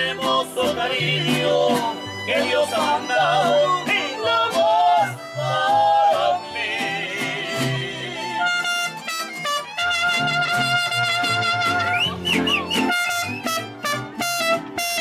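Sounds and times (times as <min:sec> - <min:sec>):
person singing: 0:00.0 - 0:08.5
strummed guitars: 0:00.0 - 0:15.0.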